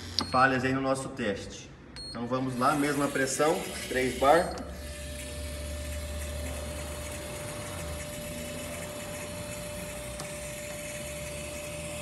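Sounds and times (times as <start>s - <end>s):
mid-pitched pump whine: 2.0s - 12.0s.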